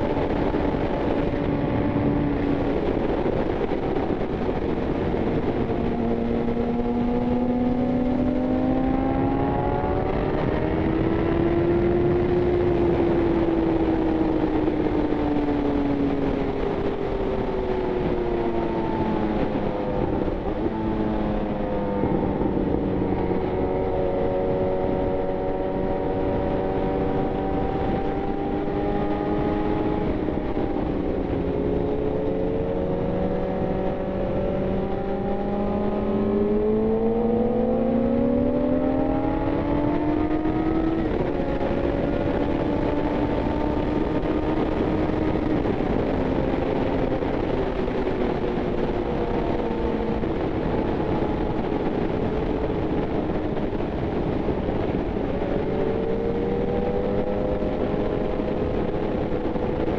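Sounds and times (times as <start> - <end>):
motorcycle engine revving: 0.0 - 59.9
wind rushing over microphone: 0.0 - 59.9.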